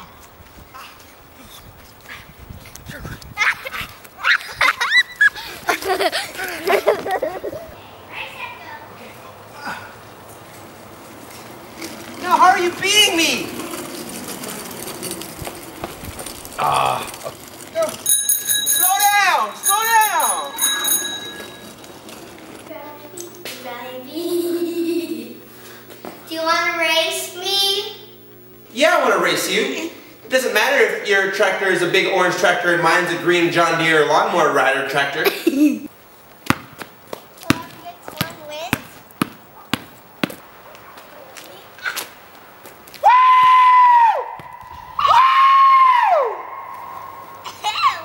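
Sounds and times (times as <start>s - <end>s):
bicycle bell ringing: 17.8s - 22.1s
basketball bouncing on asphalt: 36.3s - 41.1s, 44.4s - 44.7s
high-pitched tones: 46.3s - 48.0s.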